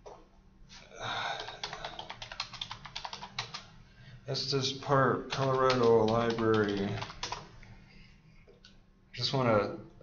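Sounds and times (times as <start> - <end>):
typing on computer keyboard: 1.3 - 3.7, 5.3 - 7.5.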